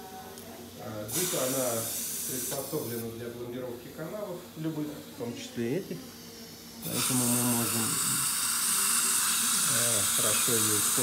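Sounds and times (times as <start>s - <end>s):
dental suction hissing: 1.1s - 3.1s, 4.7s - 11.0s.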